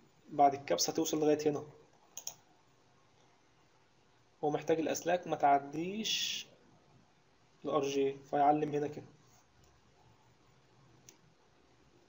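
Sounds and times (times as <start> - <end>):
light clicks: 2.2 - 2.4.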